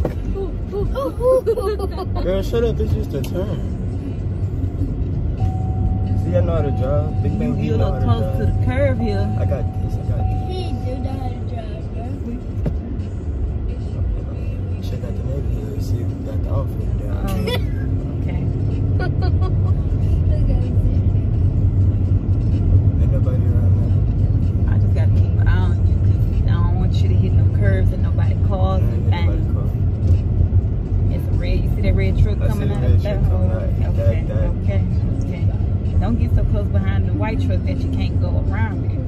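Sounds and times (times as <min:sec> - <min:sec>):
car engine rumble: 0:00.0 - 0:39.0
tyres on road: 0:00.0 - 0:39.0.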